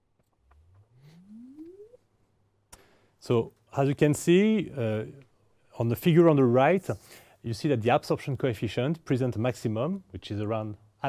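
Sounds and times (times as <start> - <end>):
rising sine tone sweep: 0.3 - 2.1.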